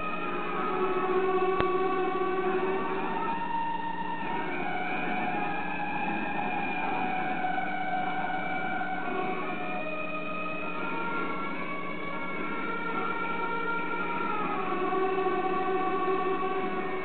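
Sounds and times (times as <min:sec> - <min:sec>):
sustained tones music: 0:00.0 - 0:17.0.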